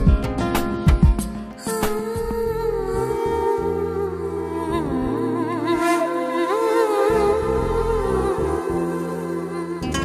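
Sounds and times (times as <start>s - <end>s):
wordless voice humming a melody: 1.0s - 10.0s.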